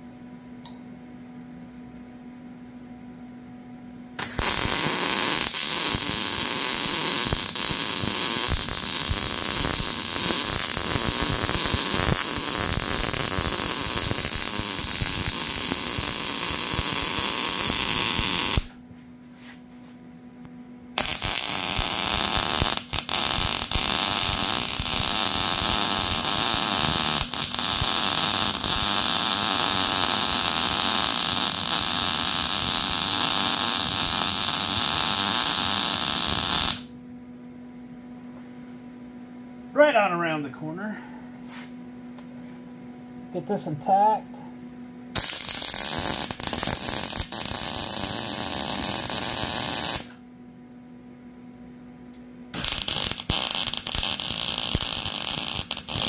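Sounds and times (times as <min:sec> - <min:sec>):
arc welder crackling: 0:04.2 - 0:18.8, 0:20.9 - 0:36.9, 0:45.1 - 0:50.3, 0:52.1 - 0:56.0.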